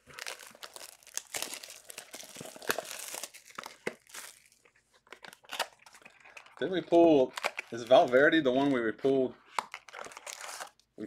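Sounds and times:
plastic shrink-wrap tearing: 0:00.0 - 0:04.6, 0:09.6 - 0:10.8.

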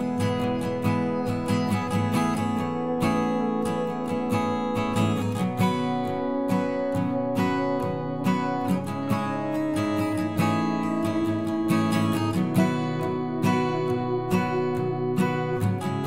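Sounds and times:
acoustic guitar strumming: 0:00.0 - 0:16.0.

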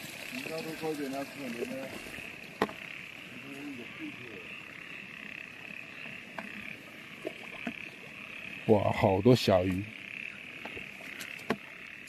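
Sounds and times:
frogs trilling: 0:00.0 - 0:12.0.

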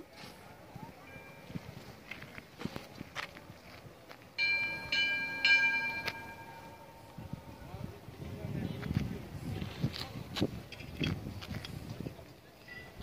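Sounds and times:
metal bell ringing: 0:01.0 - 0:01.8, 0:04.4 - 0:07.4.

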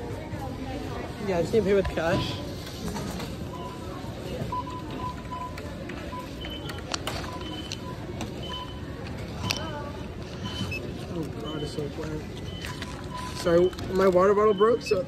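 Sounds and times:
store noise and voices: 0:00.0 - 0:15.0
checkout register beeps: 0:00.6 - 0:15.0.

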